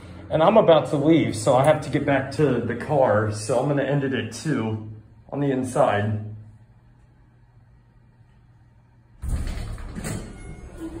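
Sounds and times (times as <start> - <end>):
elevator doors sliding open: 9.2 - 11.0.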